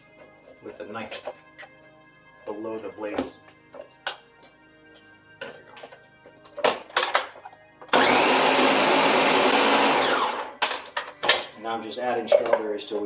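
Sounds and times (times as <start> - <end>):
blender running: 7.9 - 10.6.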